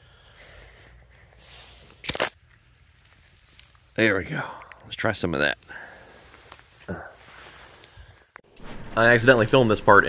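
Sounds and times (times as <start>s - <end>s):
jar crunching through icy slush: 1.8s - 5.0s.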